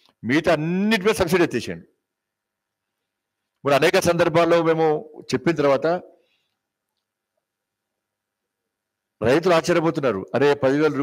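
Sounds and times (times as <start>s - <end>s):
man speaking into a microphone: 0.2s - 1.9s, 3.6s - 6.2s, 9.2s - 11.0s.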